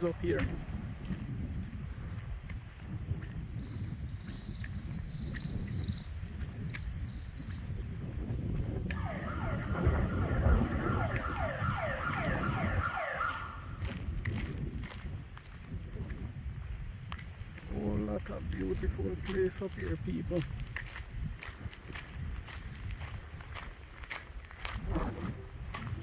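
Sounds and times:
low rumble: 8.0s - 17.8s
siren sweeping in pitch: 8.9s - 13.8s.

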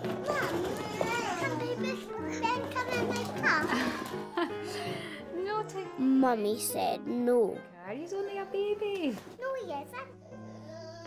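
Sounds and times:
gentle background music: 0.0s - 11.0s.

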